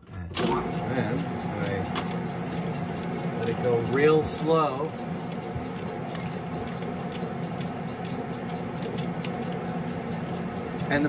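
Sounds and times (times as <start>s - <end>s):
lathe motor hum: 0.3s - 11.0s
knurling wheels ticking: 0.6s - 11.0s.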